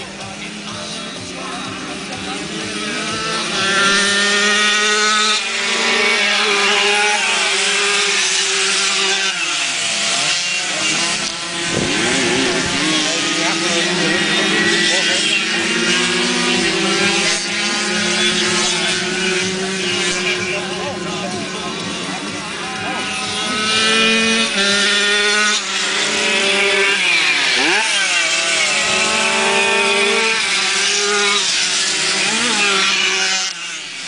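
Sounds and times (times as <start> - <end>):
motorcycle engines revving: 0.0 - 34.0.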